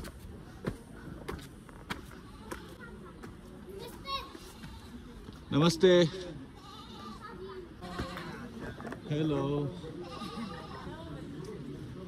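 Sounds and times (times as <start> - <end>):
faint voices: 0.0 - 12.0
child's voice: 2.7 - 4.4.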